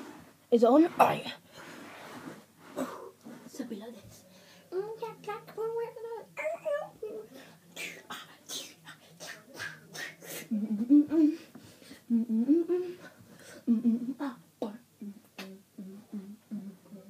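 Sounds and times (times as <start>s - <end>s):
boy beatboxing: 7.8s - 11.4s
boy humming: 8.1s - 11.5s, 12.1s - 17.0s.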